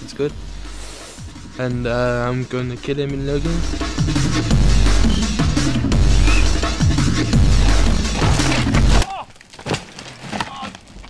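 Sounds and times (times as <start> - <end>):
drum and bass music: 0.0 - 9.0.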